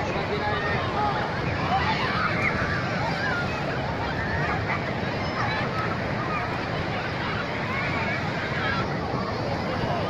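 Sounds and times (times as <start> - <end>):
surf washing: 0.0 - 10.0.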